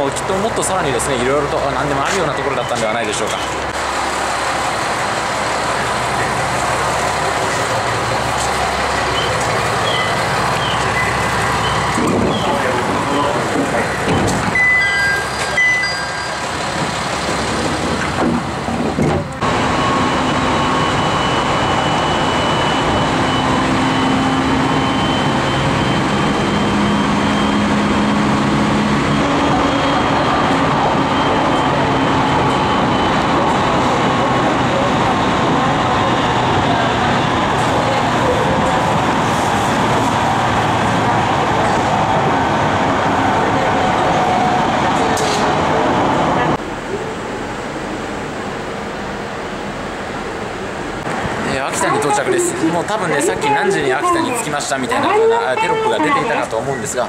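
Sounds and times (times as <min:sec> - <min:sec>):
train wheels on rail: 0:00.0 - 0:46.6
short electronic beeps: 0:09.1 - 0:16.6.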